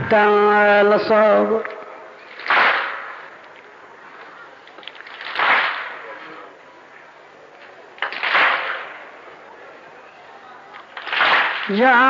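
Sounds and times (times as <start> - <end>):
crowd beating chests: 1.6 - 3.6, 4.7 - 6.2, 10.8 - 12.0.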